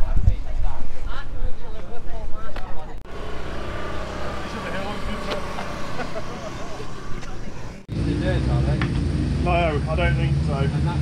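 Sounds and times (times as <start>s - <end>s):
faint voices: 2.8s - 7.9s
distant engine steady note: 3.0s - 8.5s
low engine rumble: 3.0s - 8.8s.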